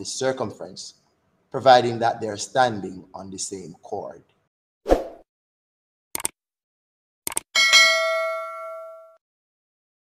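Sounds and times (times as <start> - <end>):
quick clicks: 6.2 - 6.4, 7.2 - 7.5
bright bell ding: 7.6 - 9.2.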